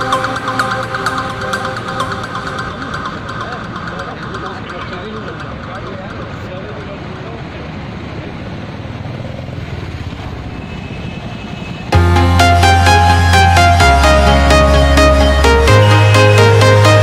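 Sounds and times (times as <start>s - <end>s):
crowd chatter: 0.0s - 8.8s
vehicle noise: 0.0s - 17.0s.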